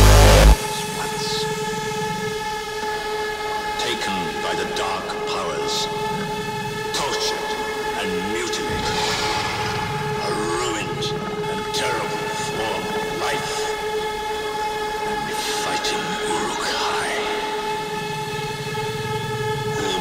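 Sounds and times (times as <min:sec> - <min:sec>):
horn-like synth drone: 0:00.0 - 0:20.0
sweeping gliding effects: 0:07.6 - 0:20.0.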